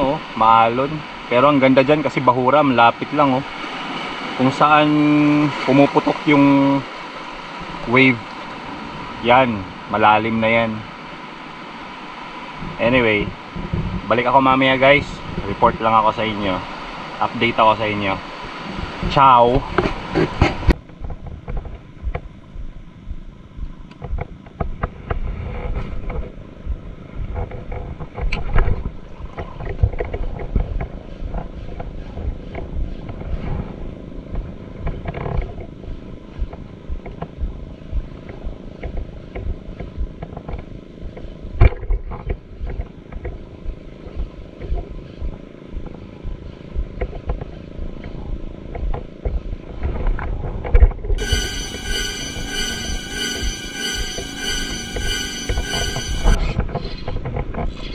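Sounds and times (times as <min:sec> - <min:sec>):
wind buffeting microphone: 0:12.6 - 0:14.2, 0:18.5 - 0:51.2
music: 0:51.2 - 0:56.6.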